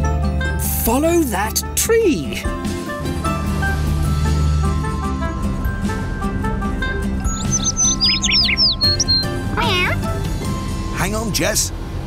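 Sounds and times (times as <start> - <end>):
background music: 0.0 - 12.0
small bird chirping: 7.2 - 10.1.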